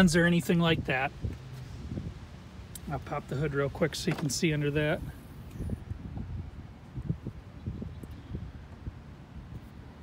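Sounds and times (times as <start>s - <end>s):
wind rumble on microphone: 0.0s - 3.2s, 4.6s - 10.0s.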